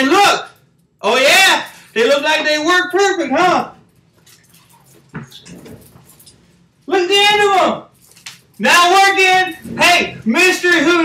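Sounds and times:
string lights rustling and clinking: 0:03.8 - 0:06.6, 0:07.9 - 0:09.8.

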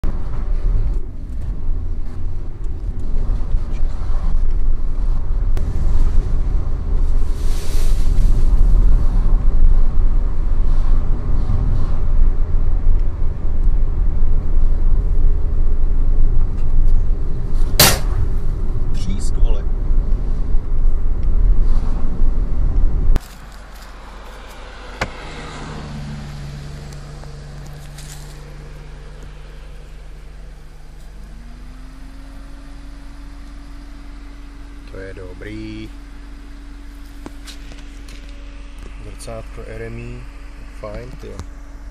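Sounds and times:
car road and engine noise: 0:00.0 - 0:41.9
steady hum: 0:00.1 - 0:41.9
mirror striking sign bang: 0:17.8 - 0:18.4.

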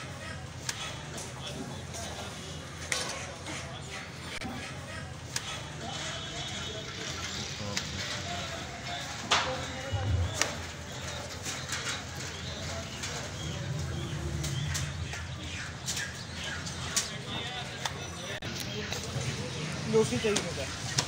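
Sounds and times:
indistinct voices: 0:00.0 - 0:21.0.

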